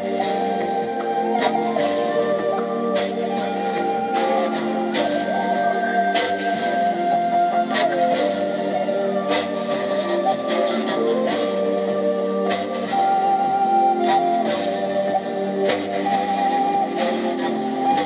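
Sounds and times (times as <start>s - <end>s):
amplified backing accompaniment: 0.0s - 18.0s
wooden flute melody: 0.0s - 18.0s.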